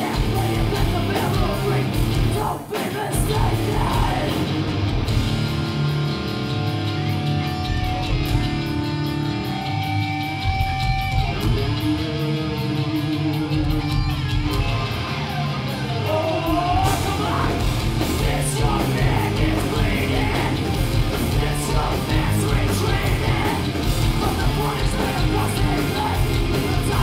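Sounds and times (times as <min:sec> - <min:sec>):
bass guitar: 0:00.0 - 0:27.0
distorted electric guitars: 0:00.0 - 0:27.0
drums: 0:00.0 - 0:27.0.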